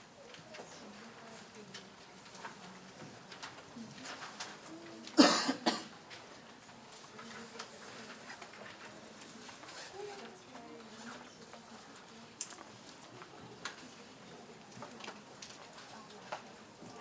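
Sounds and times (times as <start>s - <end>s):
person coughing: 5.2s - 5.9s.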